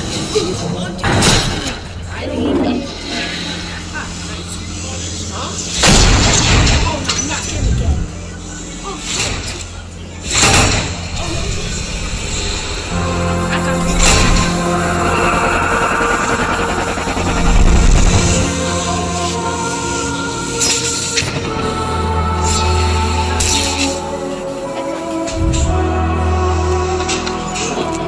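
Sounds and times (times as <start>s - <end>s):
low mechanical drone: 0.0s - 28.0s
noisy sound effect: 7.5s - 8.3s, 13.7s - 19.1s
soundtrack music: 11.2s - 28.0s.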